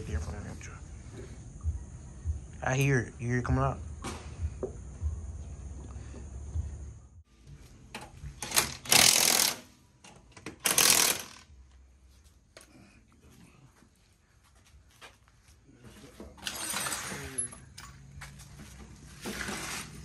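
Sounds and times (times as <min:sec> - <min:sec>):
impact wrench hammering: 0:10.4 - 0:11.4.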